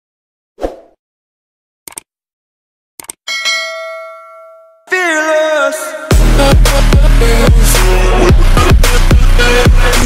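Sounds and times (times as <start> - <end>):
bell ding: 3.3 - 4.9.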